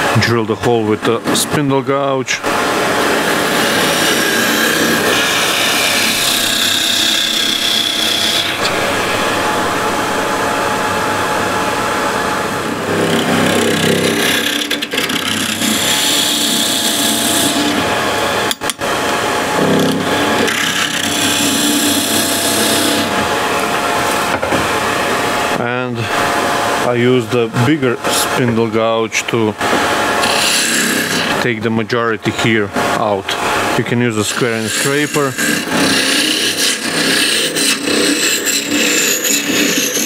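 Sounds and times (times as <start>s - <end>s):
gouge cutting wood on lathe: 2.0s - 25.7s, 29.6s - 31.5s, 33.0s - 40.0s
lathe humming: 2.1s - 26.8s, 29.6s - 31.5s, 32.7s - 40.0s.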